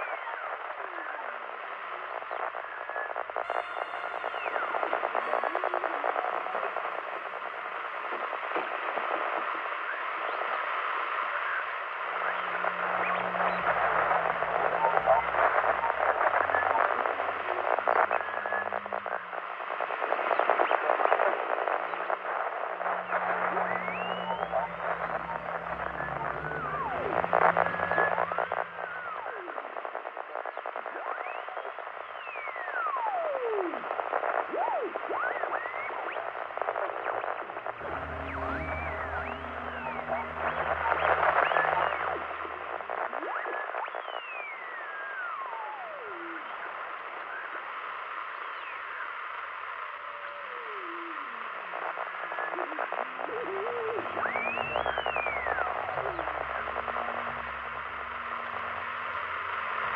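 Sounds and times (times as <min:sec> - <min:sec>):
fragments of radio voices: 0:00.0 - 0:59.9
radio static hiss and crackle: 0:00.0 - 0:59.9
low droning tone: 0:11.9 - 0:20.2, 0:22.4 - 0:29.8, 0:37.4 - 0:43.4, 0:53.7 - 0:59.9.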